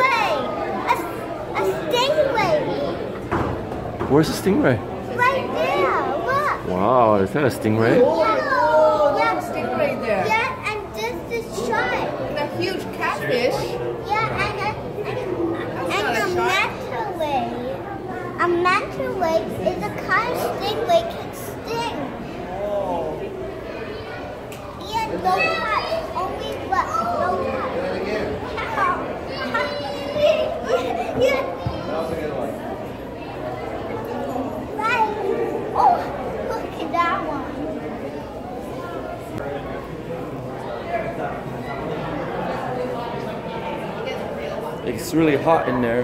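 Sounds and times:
children talking and calling out: 0.0 - 46.0.

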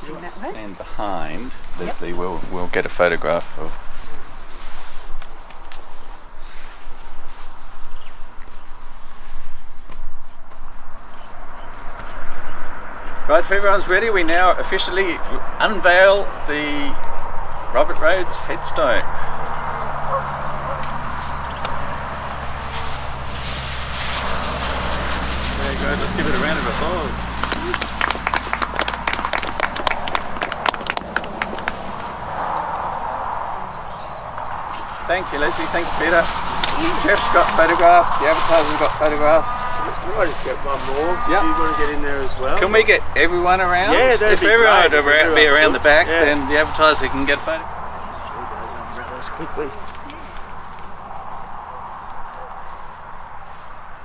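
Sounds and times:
footsteps on grass: 19.4 - 29.0, 31.0 - 48.2
people applauding: 26.0 - 32.3.

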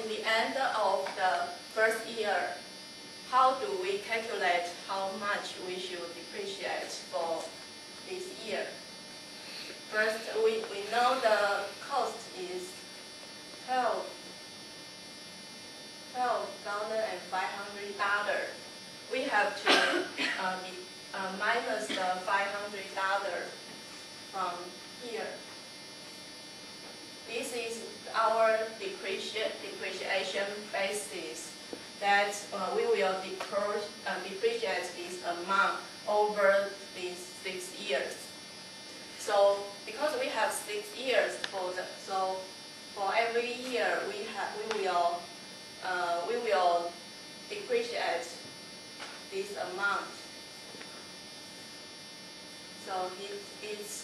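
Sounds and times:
electrical hum and buzz: 0.0 - 54.0.

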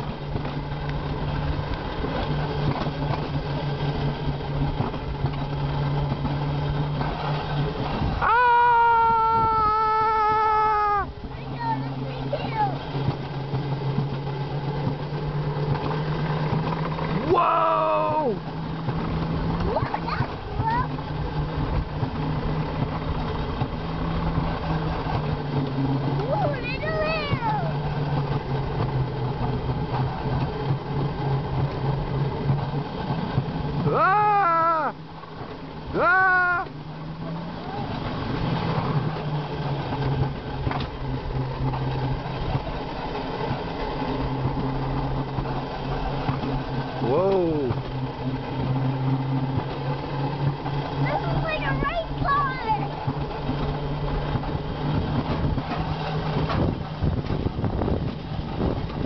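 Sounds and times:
coaster sled rumbling on rails: 0.0 - 59.0
rider crying out: 8.1 - 11.6, 17.2 - 18.5, 33.8 - 35.1, 35.9 - 36.8.

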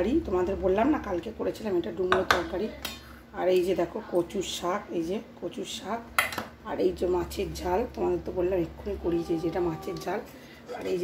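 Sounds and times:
person talking: 7.2 - 11.0.

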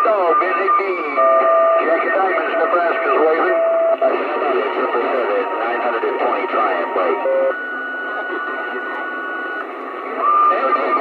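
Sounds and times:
steady radio whistle: 0.0 - 4.0, 10.2 - 11.0
garbled radio voices: 0.0 - 11.0
radio noise: 0.0 - 11.0.

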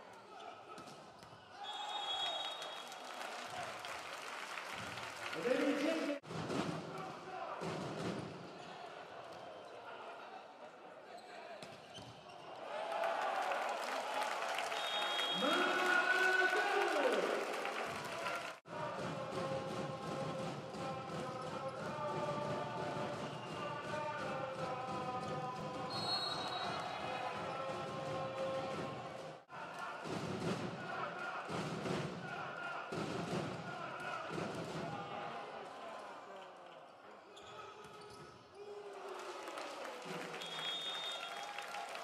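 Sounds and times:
arena crowd voices: 6.9 - 11.7, 12.3 - 42.0.

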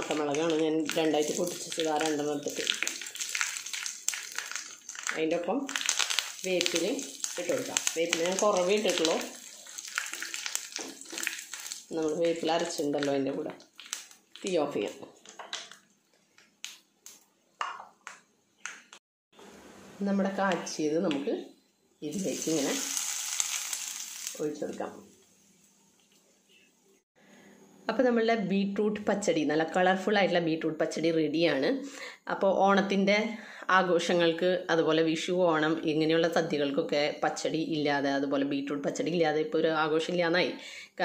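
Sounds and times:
chillies and mustard seeds sizzling: 0.0 - 15.2, 19.9 - 25.8
sharp crackles in hot oil: 0.0 - 17.3, 22.0 - 25.2.

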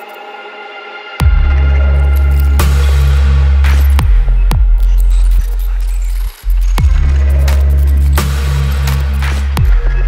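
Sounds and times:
glitchy electronic track: 0.0 - 10.0
pulsing bass line: 1.2 - 10.0.

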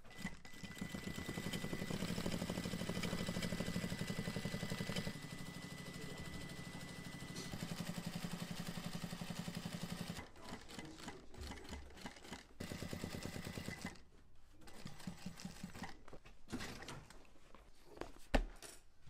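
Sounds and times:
sewing machine stitching: 0.0 - 14.0, 14.6 - 16.9.

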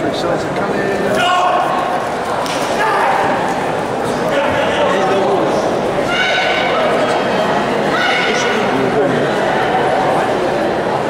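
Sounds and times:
spectators chattering: 0.0 - 11.0
high-pitched shouts: 6.0 - 6.8.

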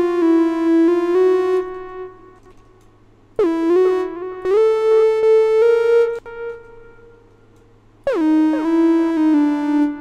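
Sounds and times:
synthesizer chords: 0.0 - 2.4, 3.4 - 10.0.

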